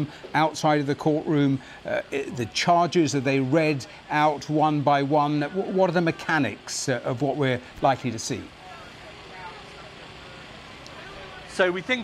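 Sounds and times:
road traffic hum: 0.0s - 12.0s
faint distant voices: 1.8s - 12.0s.

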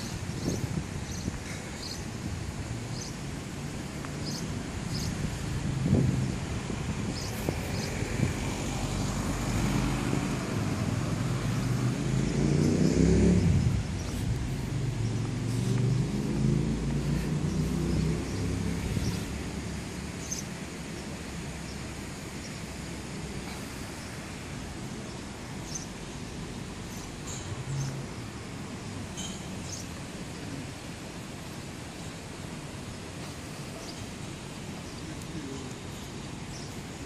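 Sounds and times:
vehicle engine accelerating past: 8.0s - 19.8s.

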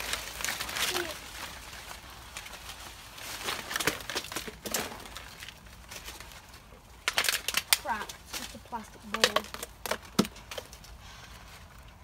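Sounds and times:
leaves and branches rustling: 0.0s - 12.0s.

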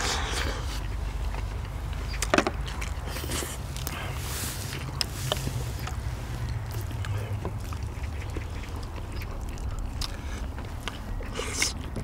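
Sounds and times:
chewing and lip-smacking: 0.0s - 12.0s
steady low rumble: 0.0s - 12.0s.

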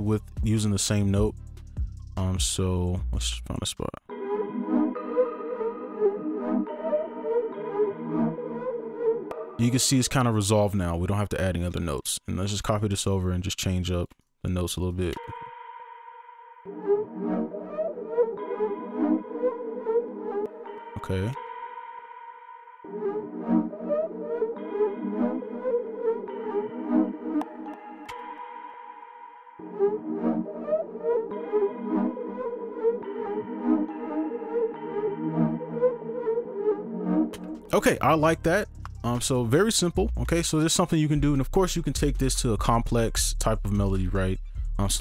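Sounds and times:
synth melody: 4.1s - 10.0s, 16.6s - 38.8s.

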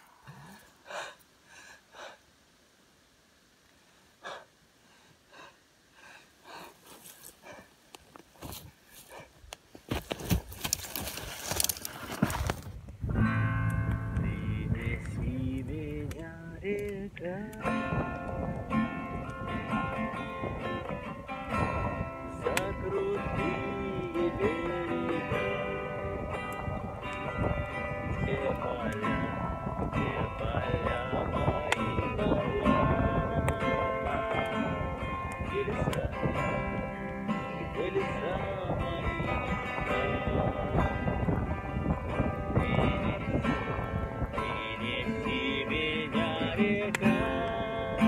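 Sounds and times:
faint uneven breathing: 0.0s - 2.3s, 3.7s - 9.5s
acoustic guitar strumming: 13.1s - 48.0s
man singing: 14.1s - 20.8s, 21.5s - 48.0s.

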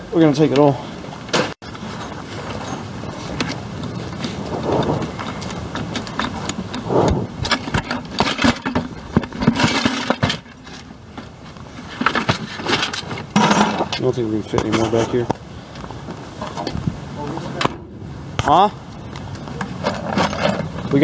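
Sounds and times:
scrap metal rattling in a bucket: 7.3s - 11.1s, 11.7s - 15.2s, 19.7s - 21.0s.

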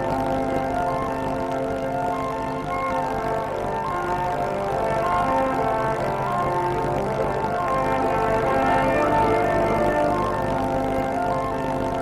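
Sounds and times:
slow sustained chords music: 0.0s - 12.0s.

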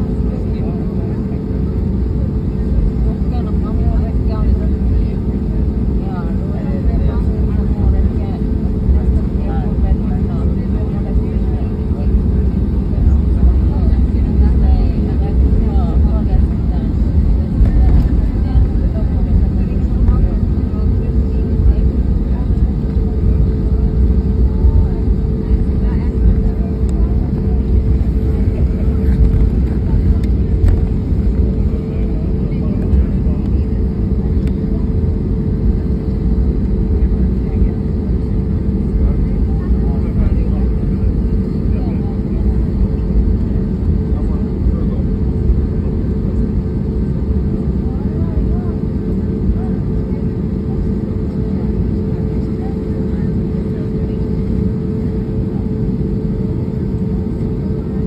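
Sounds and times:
jet engine low rumble: 0.0s - 58.0s
steady hum: 0.0s - 58.0s.

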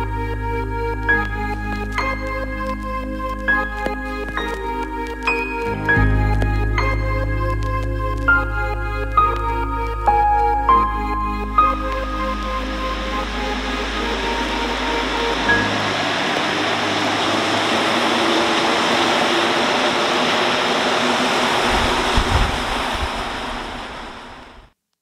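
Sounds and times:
soft background music: 0.0s - 17.0s
metro train rushing: 11.6s - 24.6s.

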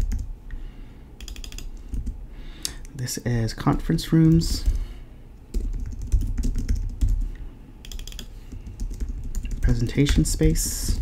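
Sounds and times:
computer keyboard keystrokes: 1.2s - 2.2s, 5.5s - 7.2s, 7.8s - 11.0s.

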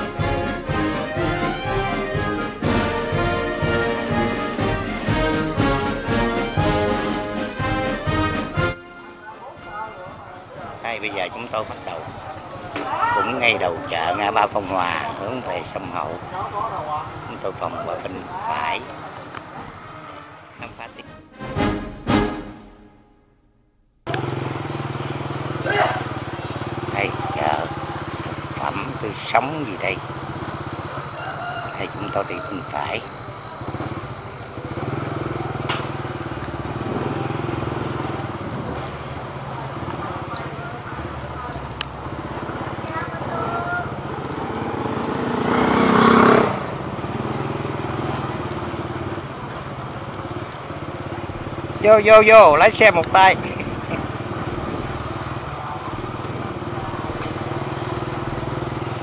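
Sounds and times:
small motorcycle engine running: 10.9s - 20.3s, 24.1s - 59.0s.

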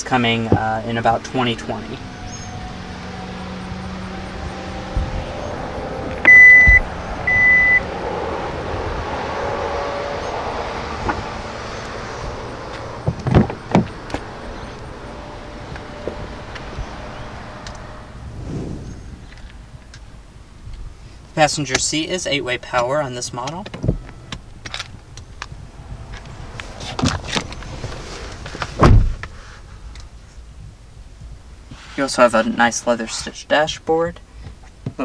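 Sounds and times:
short electronic beeps: 6.3s - 7.8s
car door clunks: 26.9s - 29.3s.

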